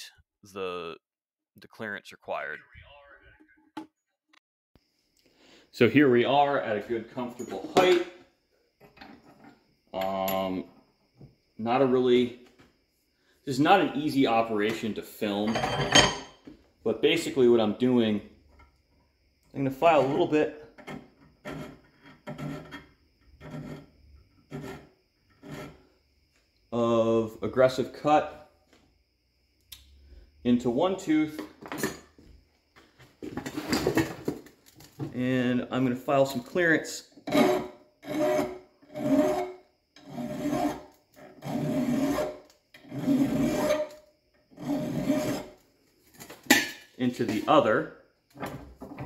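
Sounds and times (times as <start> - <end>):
hand file rasping on metal: 20.8 - 22.8, 23.4 - 23.9, 24.5 - 25.8, 37.3 - 45.6.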